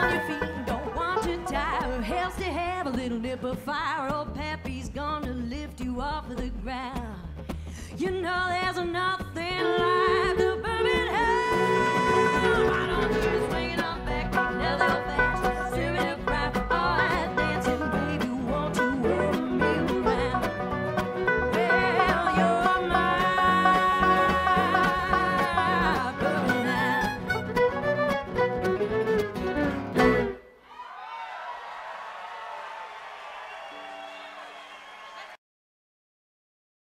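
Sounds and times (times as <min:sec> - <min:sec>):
song with singing and instruments: 0:00.0 - 0:30.5.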